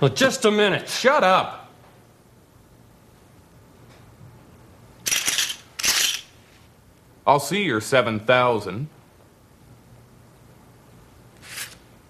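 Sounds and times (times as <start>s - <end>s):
poker chips clattering on table: 5.0s - 6.3s.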